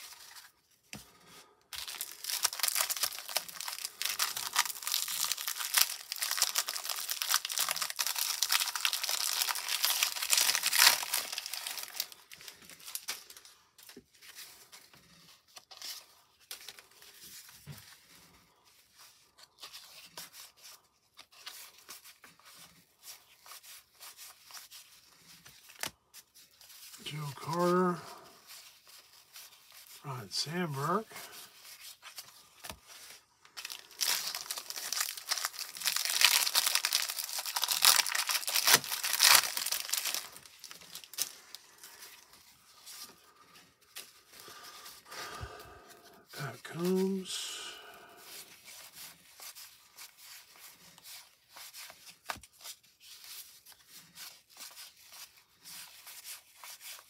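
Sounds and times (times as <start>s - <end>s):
cardboard cards rustling: 0.0s - 30.1s, 30.7s - 57.0s
cellophane wrapper tearing and crinkling: 1.8s - 13.4s, 31.3s - 46.2s.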